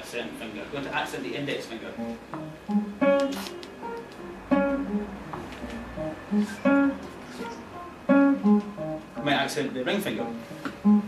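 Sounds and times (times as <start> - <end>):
classical guitar finger exercise: 1.9 - 11.0.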